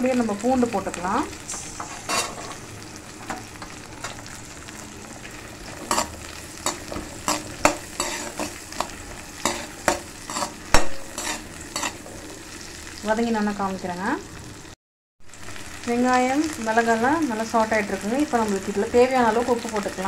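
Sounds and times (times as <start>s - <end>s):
food sizzling in hot oil: 0.0s - 20.0s
ladle scraping and clicking on wok: 1.4s - 12.4s.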